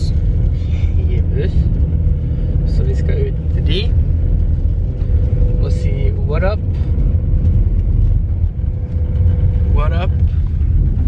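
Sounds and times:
engine and tyre rumble inside car: 0:00.0 - 0:11.0.

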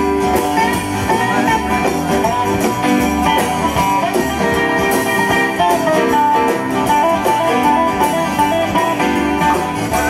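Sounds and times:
bass: 0:00.0 - 0:10.0
drums: 0:00.0 - 0:10.0.

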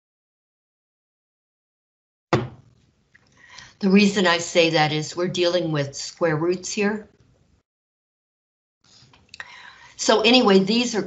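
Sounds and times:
faint breath: 0:03.3 - 0:03.8, 0:09.4 - 0:10.0
woman speaking: 0:03.8 - 0:07.1, 0:10.0 - 0:11.0.

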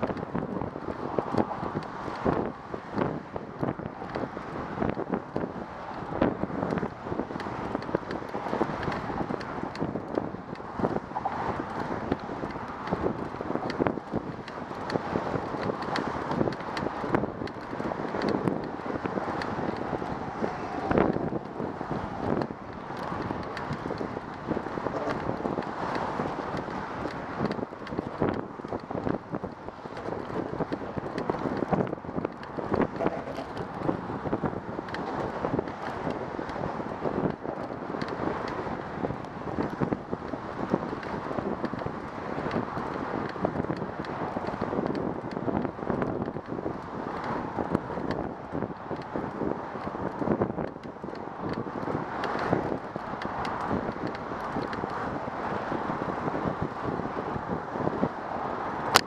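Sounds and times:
traffic: 0:00.0 - 0:59.0
wind rushing over microphone: 0:00.0 - 0:59.0
small clicks and knocks: 0:01.2 - 0:21.6, 0:22.2 - 0:34.0, 0:49.8 - 0:55.1.

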